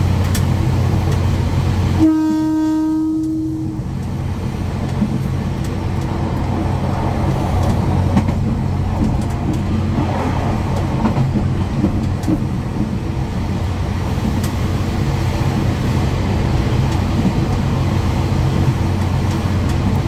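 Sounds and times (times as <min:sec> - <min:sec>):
moving train rumble: 0:00.0 - 0:20.0
train horn blast: 0:02.0 - 0:03.9.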